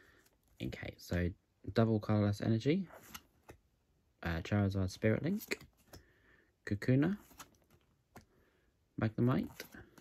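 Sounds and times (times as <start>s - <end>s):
trading cards being shuffled: 7.1s - 8.3s.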